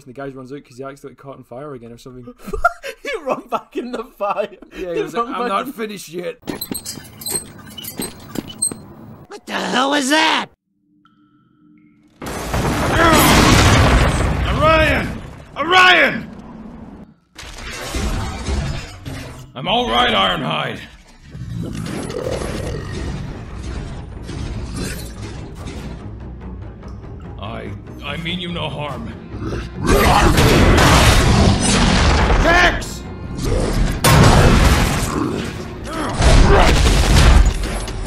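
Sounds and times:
high-pitched squeaks and chirps: 6.5 - 9.2
soundtrack music: 21.5 - 38.0.

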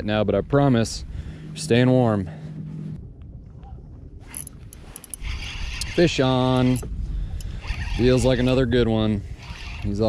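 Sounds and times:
fishing reel clicks: 4.3 - 8.6, 9.3 - 10.0
fishing reel gears whirring: 4.3 - 10.0.

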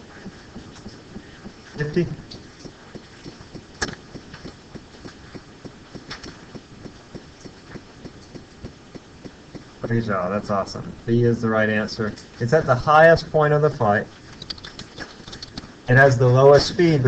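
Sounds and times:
faint clicks taps and rustles: 14.2 - 15.8.

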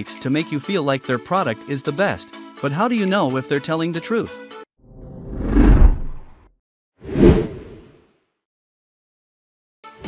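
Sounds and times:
whoosh sound effect: 5.0 - 6.4.

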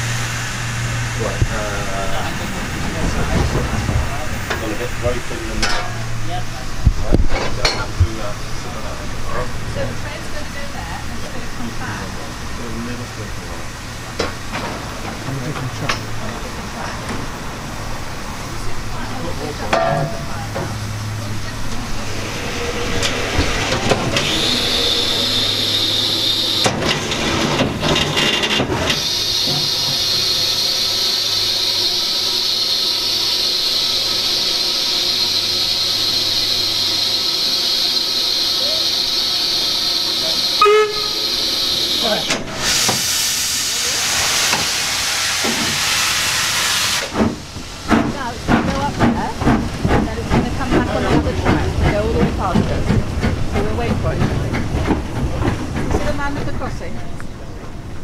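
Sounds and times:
steam hissing from locomotive: 0.0 - 6.9, 20.4 - 27.8, 28.9 - 54.2
steam locomotive exhaust beats: 0.0 - 58.0.

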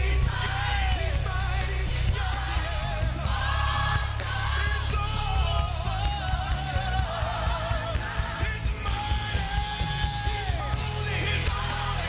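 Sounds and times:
gospel choir and band: 0.0 - 12.0.

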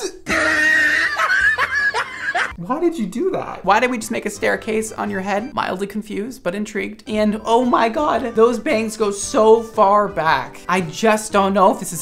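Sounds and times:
man laughing: 0.2 - 2.6.

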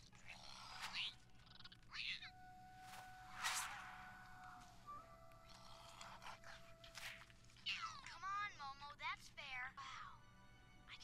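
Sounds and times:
squeaky cartoon chirps: 0.0 - 2.4
soft background music: 0.0 - 11.0.

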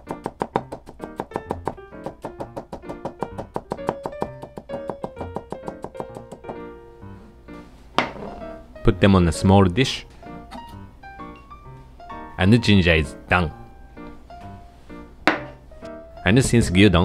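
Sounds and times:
knife chopping on cutting board: 0.0 - 6.6
background music: 0.0 - 17.0.

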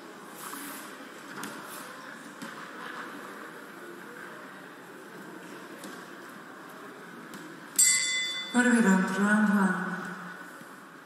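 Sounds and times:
boxing ring bell ringing: 7.8 - 8.8.

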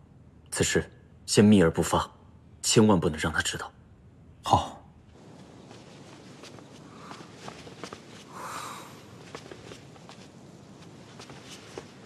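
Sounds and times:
soft footsteps: 5.1 - 12.0.

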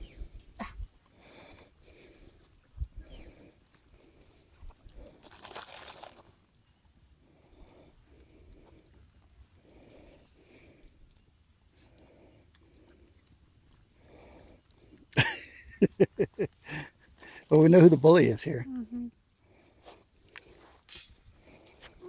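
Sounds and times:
alpacas chewing: 0.8 - 15.1
paper bag rustling: 5.2 - 6.3
person laughing loudly: 15.2 - 16.8.

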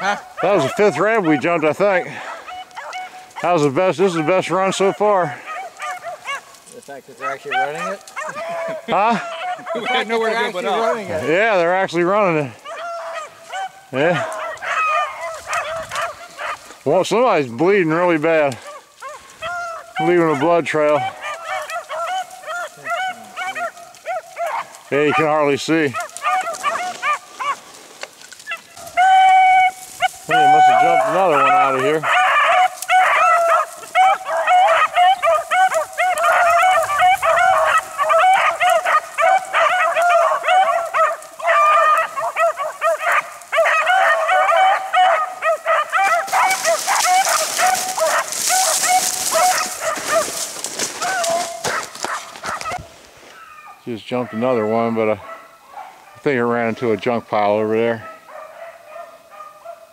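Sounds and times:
hounds baying: 0.0 - 59.9.

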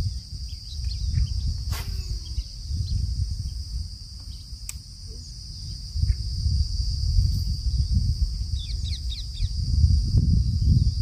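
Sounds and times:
insects droning: 0.0 - 11.0
wind rumbling on microphone: 0.0 - 11.0.

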